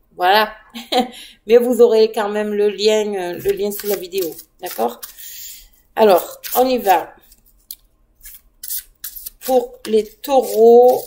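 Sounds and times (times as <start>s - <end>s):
cards being shuffled: 3.4s - 5.2s, 6.1s - 11.0s.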